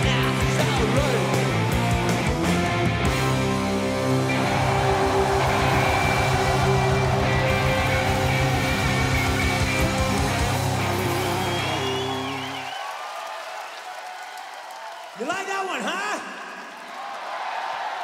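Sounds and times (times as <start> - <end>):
rock band playing: 0.0 - 12.7.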